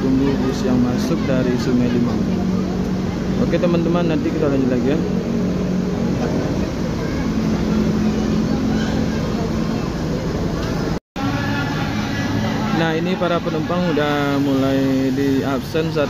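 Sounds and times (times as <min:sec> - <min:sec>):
bus engines idling: 0:00.0 - 0:16.0
crowd chatter: 0:00.0 - 0:16.0.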